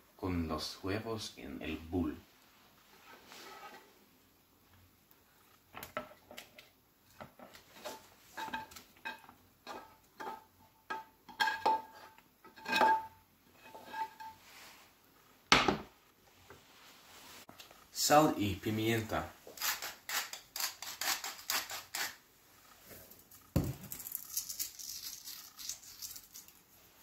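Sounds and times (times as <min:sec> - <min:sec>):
spatula scraping frying pan: 0:03.0 - 0:04.0, 0:11.3 - 0:14.8.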